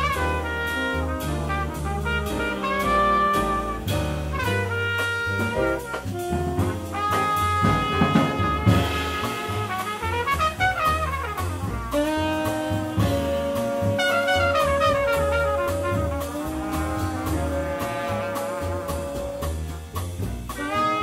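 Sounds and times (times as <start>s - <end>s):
drums: 0.0s - 21.0s
jazz horns playing: 0.0s - 21.0s
piano: 0.0s - 21.0s
upright bass: 0.0s - 21.0s.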